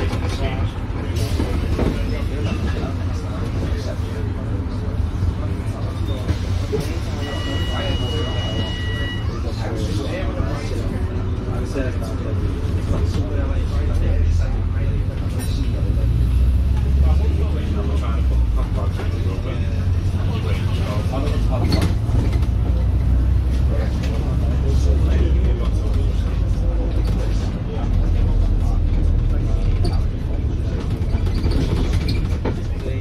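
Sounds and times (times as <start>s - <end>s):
bus engine and road rumble: 0.0s - 33.0s
indistinct passenger voices: 0.0s - 33.0s.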